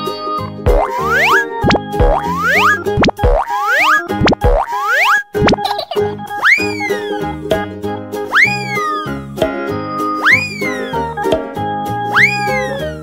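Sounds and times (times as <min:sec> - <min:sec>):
cheerful children's music: 0:00.0 - 0:13.0
cartoon rising pitch glides: 0:00.7 - 0:05.6, 0:06.4 - 0:07.2, 0:08.3 - 0:09.2, 0:10.2 - 0:11.1, 0:12.1 - 0:13.0.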